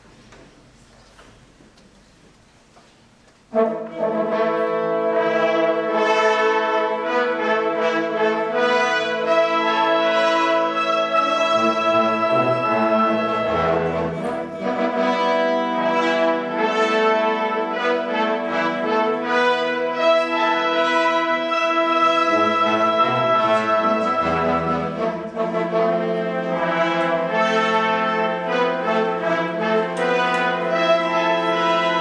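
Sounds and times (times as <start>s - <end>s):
wind band playing chords: 3.5s - 32.0s.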